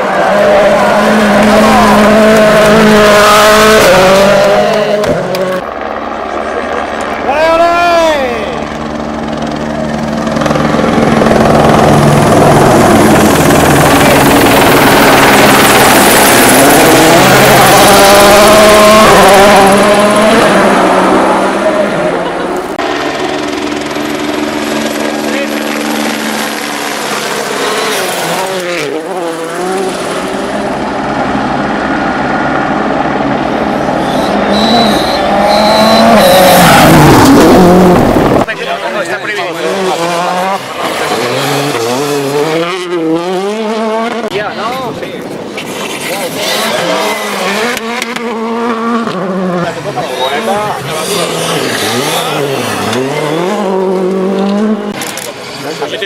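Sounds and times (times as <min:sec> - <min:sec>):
rally car engines revving: 0:00.0 - 0:56.0.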